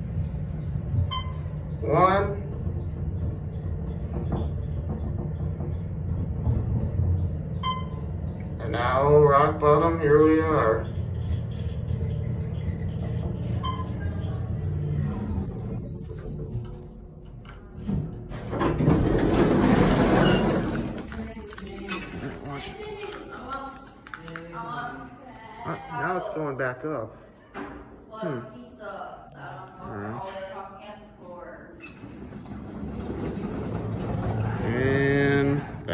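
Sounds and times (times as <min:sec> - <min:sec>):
elevator doors opening rush: 0:00.0 - 0:23.6, 0:31.8 - 0:35.9
elevator machine hum: 0:00.0 - 0:24.9, 0:31.9 - 0:35.9.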